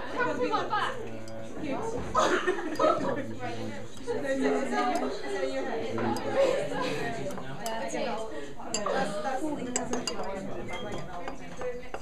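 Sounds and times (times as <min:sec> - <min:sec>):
glass clinking on glass: 0:08.7 - 0:12.0.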